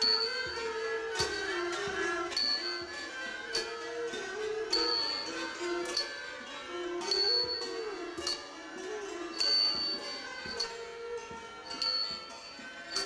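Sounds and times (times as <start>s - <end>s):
classical ensemble melody: 0.0s - 13.0s
small hand cymbals striking: 0.0s - 13.0s.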